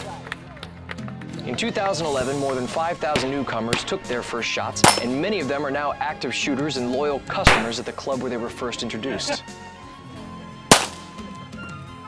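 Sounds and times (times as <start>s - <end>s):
background music: 0.0s - 12.0s
pistol shot: 3.2s - 4.0s, 4.8s - 5.2s, 7.4s - 7.8s, 10.7s - 11.2s.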